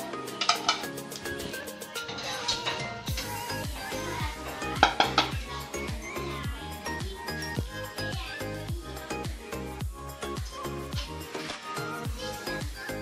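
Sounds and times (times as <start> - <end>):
background music: 0.0 - 13.0
wire skimmer clinking on pot: 1.9 - 3.4.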